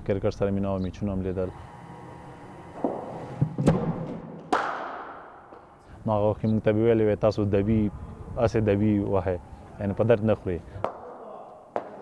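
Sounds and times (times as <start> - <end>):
cricket ball impact crack: 2.8 - 5.7.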